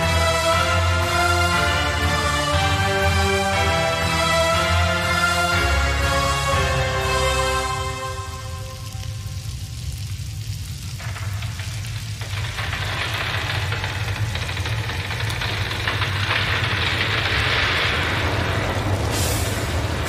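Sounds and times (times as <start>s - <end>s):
low droning rumble with hiss: 0.0s - 20.0s.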